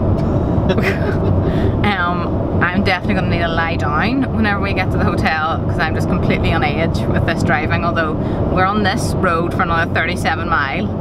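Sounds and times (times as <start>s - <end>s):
car road and engine rumble: 0.0s - 11.0s
woman laughing: 0.7s - 1.8s.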